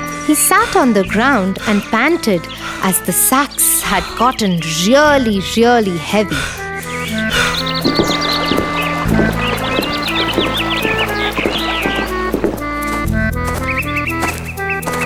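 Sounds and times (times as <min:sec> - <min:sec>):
light cartoon music: 0:00.0 - 0:15.0
high bird-like chirps: 0:06.8 - 0:15.0.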